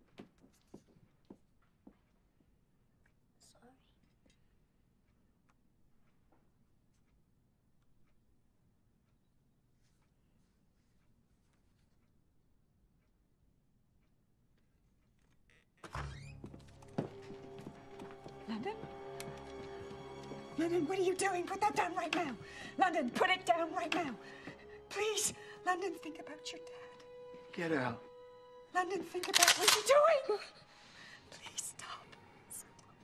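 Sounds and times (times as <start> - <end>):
person whispering: 3.4 - 4.0
tense film score music: 16.4 - 33.0.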